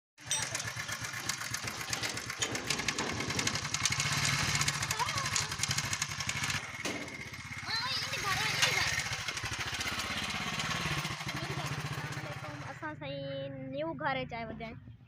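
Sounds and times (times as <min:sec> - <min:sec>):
motorcycle engine running: 0:00.2 - 0:15.0.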